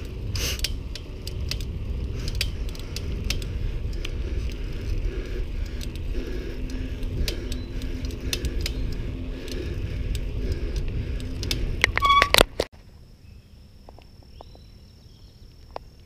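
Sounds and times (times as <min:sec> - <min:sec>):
wind rumble on microphone: 0:00.0 - 0:12.6
bicycle rattling clicks: 0:00.0 - 0:12.7
bicycle brakes squealing: 0:11.6 - 0:12.6.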